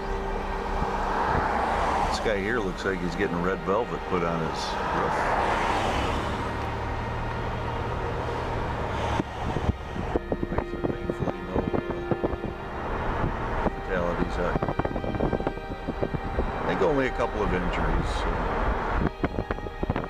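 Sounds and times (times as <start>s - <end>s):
road noise: 0.0s - 20.0s
vehicle engine hum: 0.0s - 20.0s.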